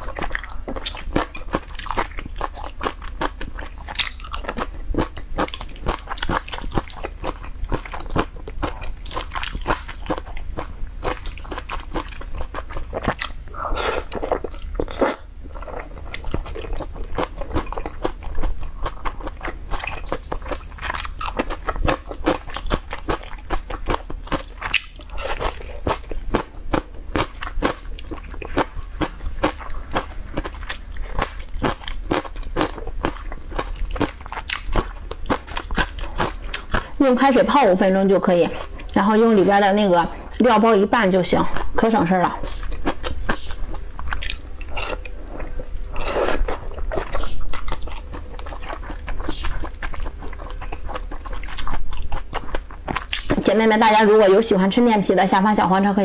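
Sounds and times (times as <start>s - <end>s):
wet chewing mouth clicks: 0.0s - 37.0s, 42.4s - 53.4s.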